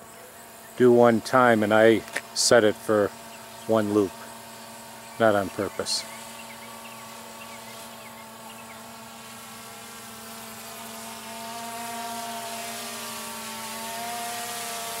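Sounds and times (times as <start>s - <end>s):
drone propellers buzzing: 0.0s - 15.0s.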